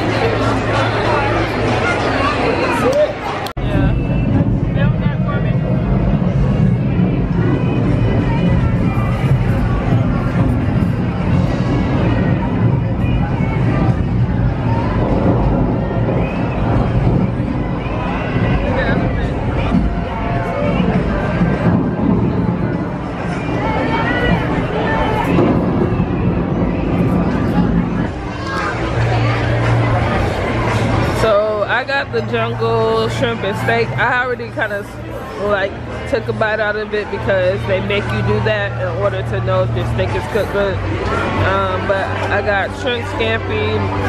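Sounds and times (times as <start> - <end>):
crowd chatter: 0.0 - 44.0
low rumble: 3.6 - 44.0.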